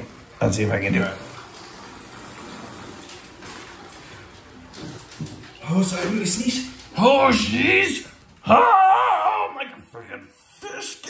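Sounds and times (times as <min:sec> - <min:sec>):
water washing in bathtub: 0:00.0 - 0:11.0.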